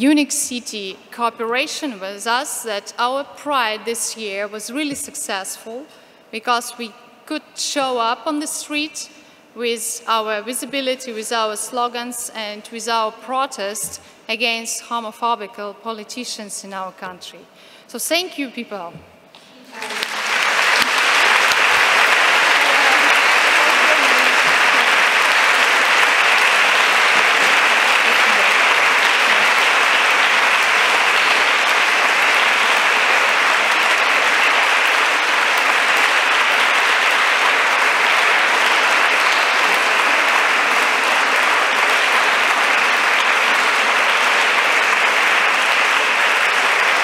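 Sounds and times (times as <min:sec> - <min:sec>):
large audience applause: 0:19.6 - 0:47.0.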